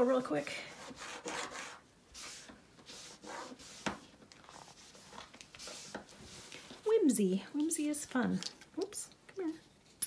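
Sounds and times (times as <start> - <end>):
soft rubbing wiping glue: 0.1 - 6.8.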